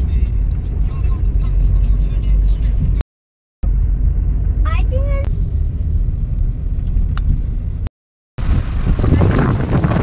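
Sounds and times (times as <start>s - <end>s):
low rumble: 3.6s - 10.0s
wind on microphone: 8.4s - 10.0s.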